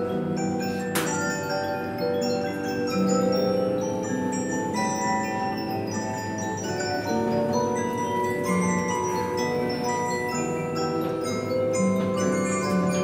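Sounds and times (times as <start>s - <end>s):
music box playing a tune: 0.0s - 13.0s.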